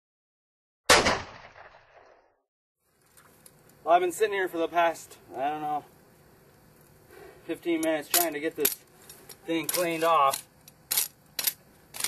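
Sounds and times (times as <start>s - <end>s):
gunshot-like bang: 0.9s - 2.1s.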